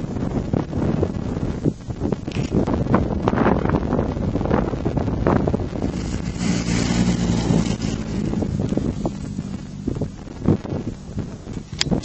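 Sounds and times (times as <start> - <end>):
wind buffeting microphone: 0.0 - 12.0
tyres hissing on dirt: 5.8 - 9.8
car engine driving past: 5.9 - 11.4.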